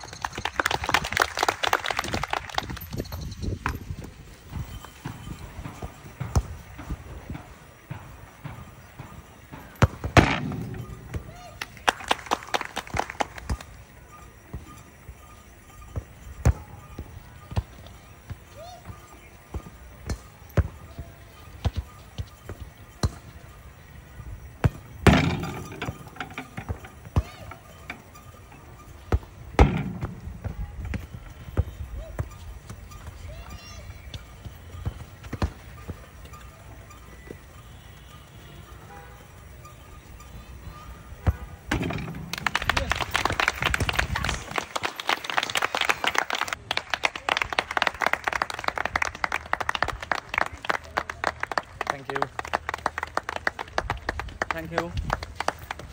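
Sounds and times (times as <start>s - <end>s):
footballs kicked on artificial turf: 3.4s - 11.6s, 16.0s - 23.4s, 29.1s - 36.2s, 41.2s - 44.6s
people shouting: 10.8s - 11.8s, 18.2s - 19.3s, 27.0s - 27.9s, 33.0s - 34.5s.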